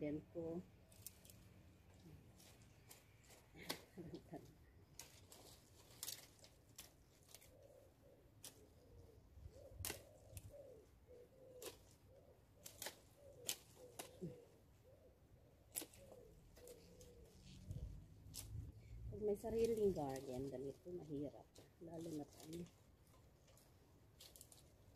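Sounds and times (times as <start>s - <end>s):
pruning loppers snipping branches: 4.9s - 7.5s, 8.4s - 8.8s, 9.8s - 10.5s, 11.5s - 12.0s, 12.6s - 14.2s, 15.6s - 17.1s, 21.5s - 24.9s
bird cooing softly: 7.3s - 18.0s.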